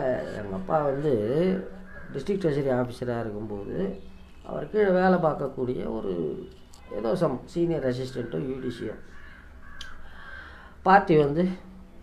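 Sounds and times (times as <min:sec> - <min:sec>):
man speaking: 0:00.0 - 0:09.1, 0:10.8 - 0:11.7
faint harsh bird calls: 0:00.0 - 0:10.8.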